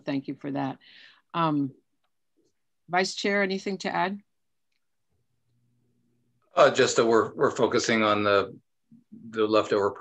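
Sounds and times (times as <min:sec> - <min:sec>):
woman speaking: 0:00.0 - 0:01.8, 0:02.9 - 0:04.3.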